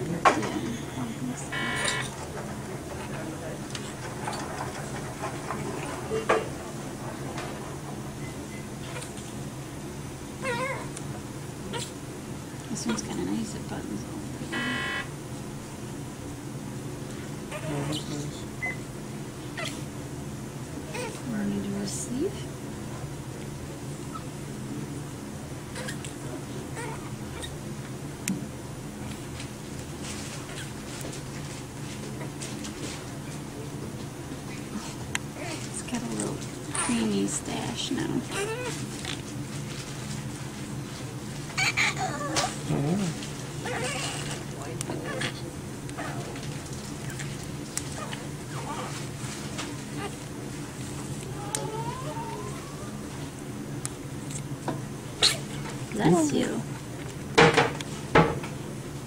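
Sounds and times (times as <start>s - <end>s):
steady low hum: 0.0s - 59.0s
electronic monitor beep: 1.5s - 2.1s, 14.5s - 15.1s
baby whimpering: 41.6s - 44.3s, 51.3s - 53.0s.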